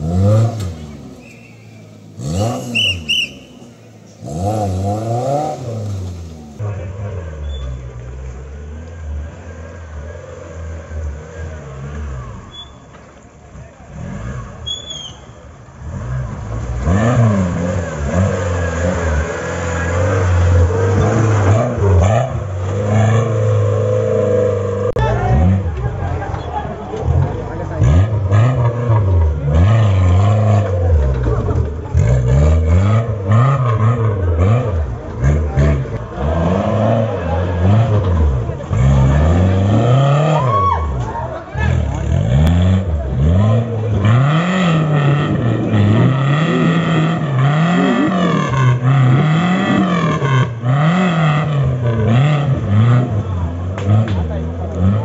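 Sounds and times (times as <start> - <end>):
off-road engine revving hard: 0.0 - 12.8, 13.6 - 55.0.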